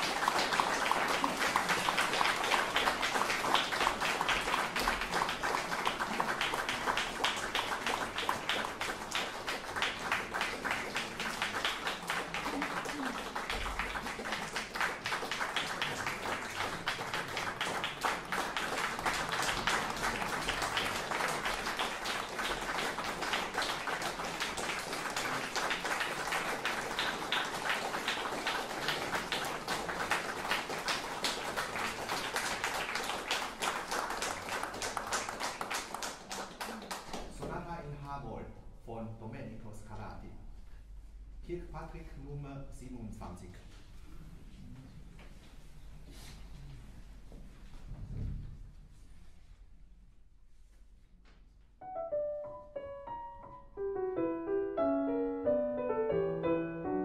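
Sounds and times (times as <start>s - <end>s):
audience applauding: 0.0s - 37.6s.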